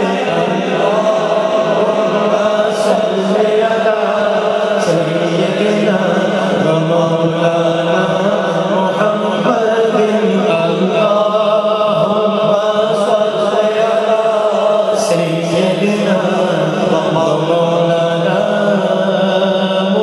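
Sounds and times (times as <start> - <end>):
men chanting through pa: 0.0 - 20.0.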